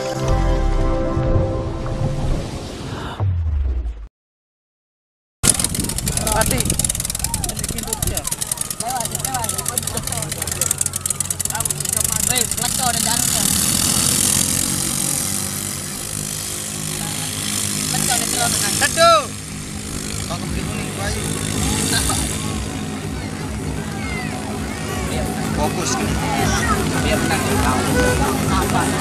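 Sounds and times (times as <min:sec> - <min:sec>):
racing boat engine running hard: 0:05.4 - 0:29.0.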